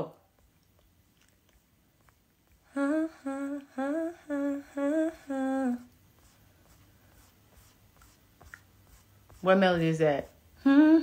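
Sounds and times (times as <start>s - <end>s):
woman humming: 2.6s - 6.0s, 10.6s - 11.0s.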